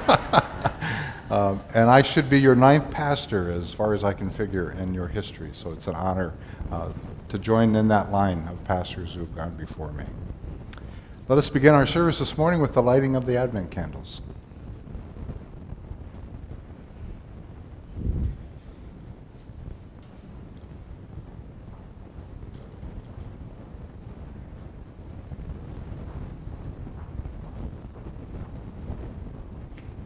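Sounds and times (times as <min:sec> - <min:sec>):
low steady rumbling: 0:00.0 - 0:30.0.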